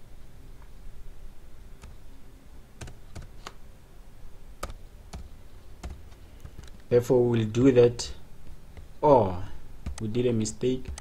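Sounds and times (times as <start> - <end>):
computer keyboard key clicks: 9.9 - 10.1.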